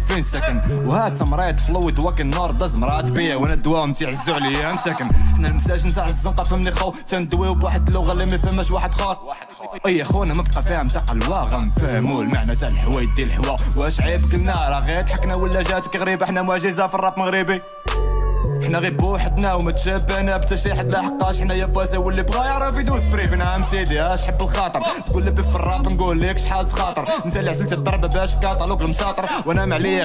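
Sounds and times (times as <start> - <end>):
rapping over a trap beat: 0.0 - 30.0.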